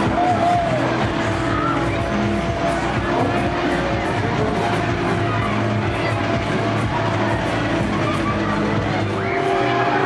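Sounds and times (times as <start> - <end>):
fairground music with steady beat: 0.0 - 10.0
funfair ride machinery running: 0.0 - 10.0.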